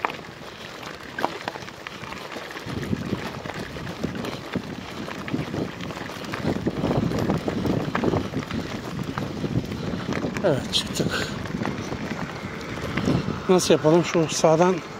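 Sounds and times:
gravel crunching: 0.0 - 14.9
wind rumble on microphone: 0.0 - 14.9.

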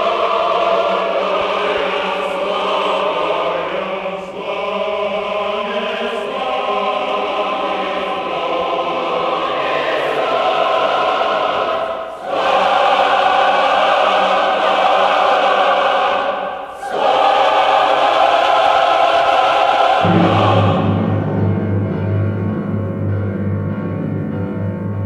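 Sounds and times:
choir singing held chords: 0.0 - 25.0.

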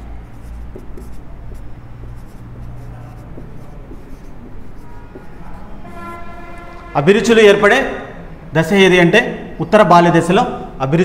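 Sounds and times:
marker scratching on whiteboard: 0.0 - 6.3.

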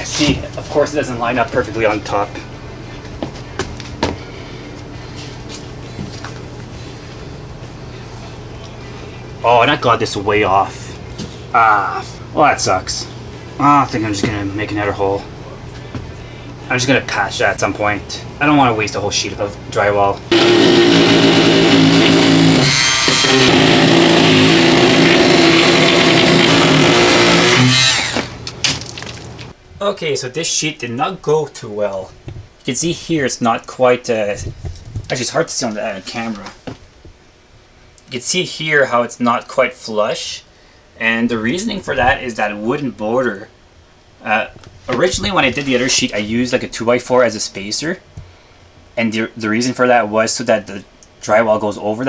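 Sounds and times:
steady low hum: 0.0 - 52.0
rotary tool cutting drywall: 20.3 - 28.4.

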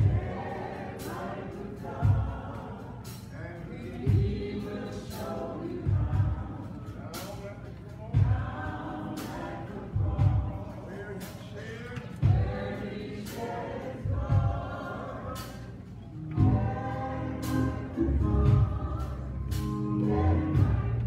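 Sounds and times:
choir singing: 0.0 - 21.0
drum and cymbal hits: 0.0 - 21.0
organ: 14.8 - 21.0.

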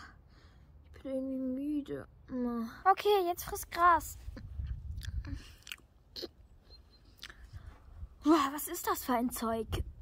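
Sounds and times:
crunchy chewing: 4.4 - 7.6.

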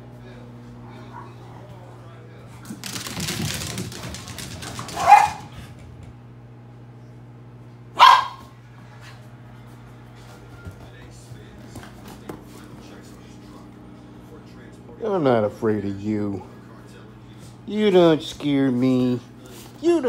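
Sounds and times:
small dog barking: 4.9 - 5.5, 7.9 - 8.6
scuffling noise: 8.8 - 13.7.

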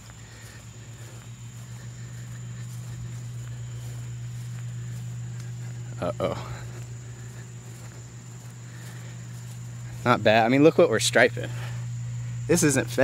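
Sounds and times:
high insect whine: 0.0 - 13.0
soft steps on grass: 0.0 - 13.0
steady low hum: 0.0 - 13.0.

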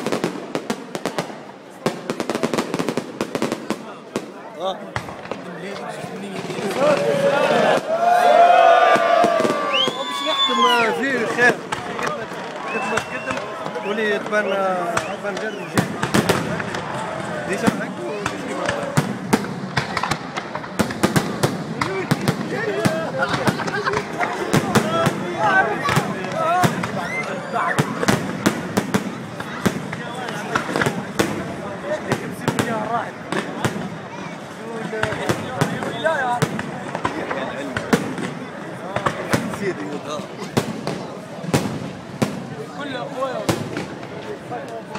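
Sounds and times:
fireworks bangs and crackles: 0.0 - 44.9
people talking: 3.6 - 19.1, 19.8 - 44.9.

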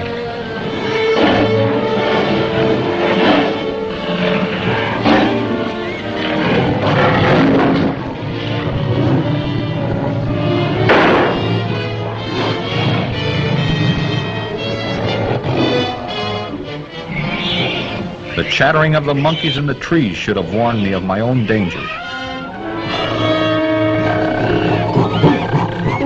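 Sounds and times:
sustained orchestral chords: 0.0 - 25.6
loud orchestral hits: 0.8 - 14.9.

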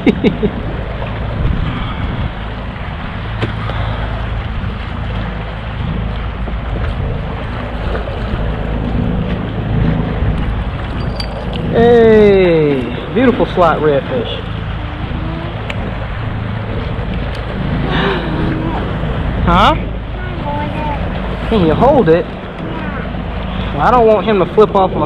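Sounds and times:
water slapping against kayak: 0.0 - 25.0
wind rumbling on microphone: 0.0 - 25.0.

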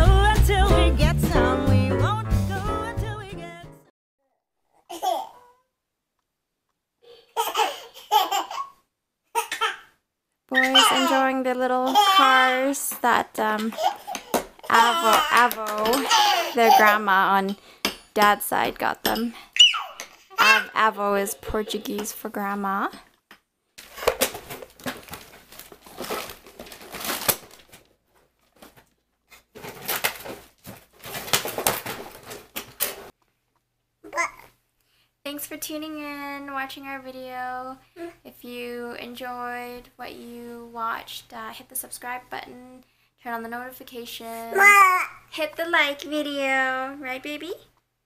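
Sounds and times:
toddler giggling: 7.3 - 8.7, 10.6 - 11.2, 11.9 - 12.4, 13.6 - 17.0
plastic toy trucks rattling: 29.5 - 33.1.

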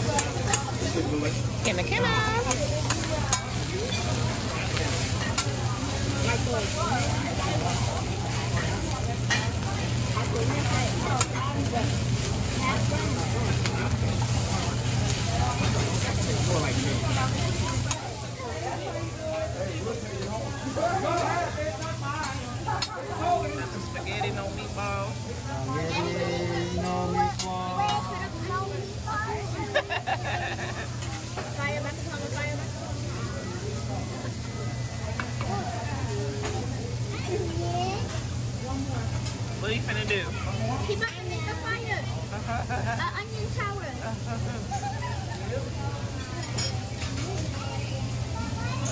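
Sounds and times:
rice sizzling on a griddle: 0.0 - 48.9
voices chattering: 0.0 - 48.9
metal spatula clinking on griddle: 2.4 - 4.2, 46.2 - 47.4.

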